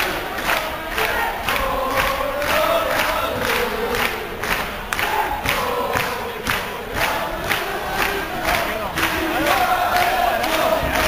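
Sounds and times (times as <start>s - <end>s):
crowd chanting: 0.0s - 11.0s
steady beat: 0.0s - 11.0s.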